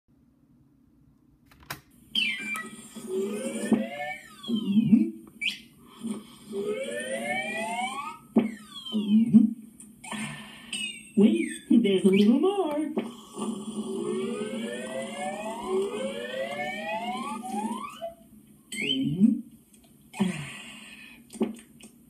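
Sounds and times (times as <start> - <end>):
cartoon straw drinking whistles: 2.2 - 6.1, 10.1 - 12.4.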